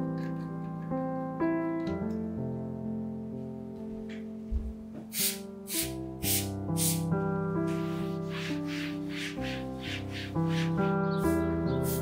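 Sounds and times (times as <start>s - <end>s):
spray bottle spritzing: 5.1s - 7.1s, 7.8s - 12.0s.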